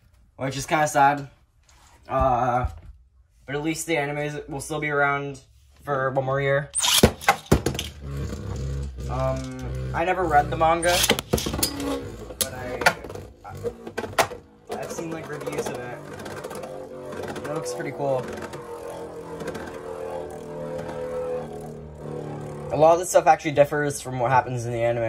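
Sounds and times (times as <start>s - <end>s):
spinning top whirring: 6.8s - 23.6s.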